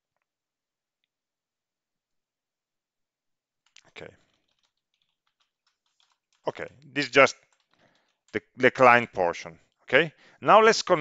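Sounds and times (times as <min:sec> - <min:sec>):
computer keyboard typing: 0:03.7 - 0:08.4.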